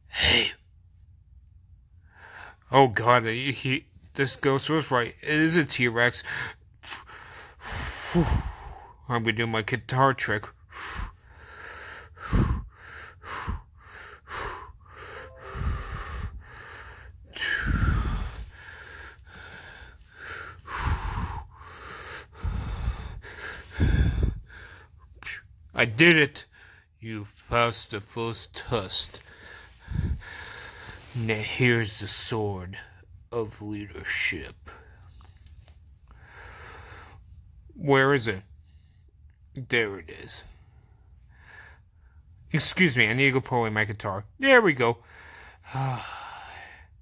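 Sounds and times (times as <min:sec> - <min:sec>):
low hum: 0:13.5 - 0:25.4.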